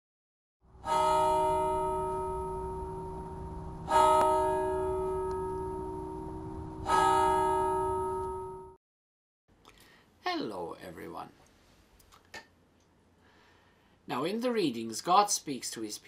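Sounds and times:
bell ringing: 0.8s - 8.8s.

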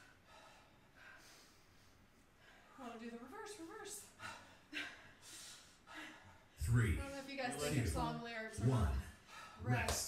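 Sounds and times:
person breathing hard: 0.0s - 2.8s.

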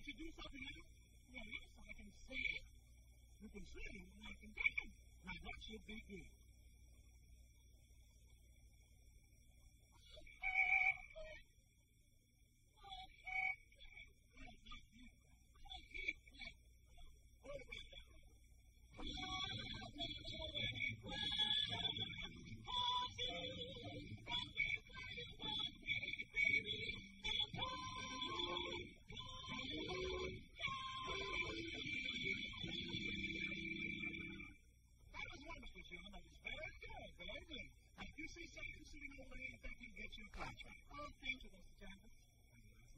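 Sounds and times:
faint steady high whine: 0.0s - 42.9s
person singing high note: 19.0s - 34.4s.

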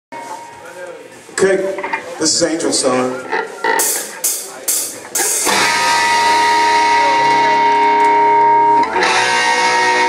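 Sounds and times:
electric guitars ringing chord: 3.8s - 10.0s.

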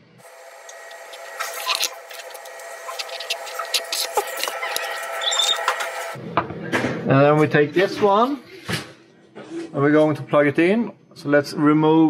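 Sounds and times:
steady multi-pitched hum: 0.0s - 6.3s
tape backing peeling: 0.2s - 6.2s.

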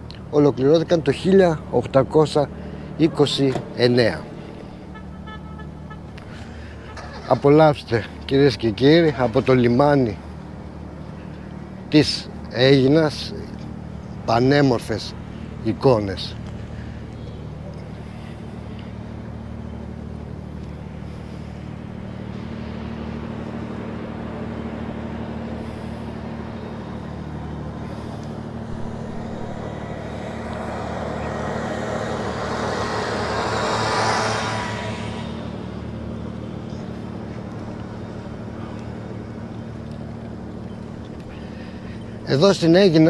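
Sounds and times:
low engine hum: 0.0s - 43.0s
vehicle passing by: 0.2s - 43.0s.

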